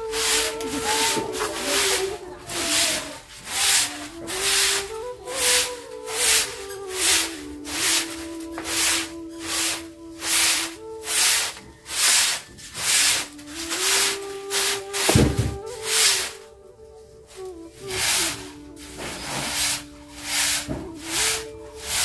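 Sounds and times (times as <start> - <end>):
broom sweeping cement floor: 0.0 - 16.5, 17.2 - 22.0
soft background tune: 0.0 - 22.0.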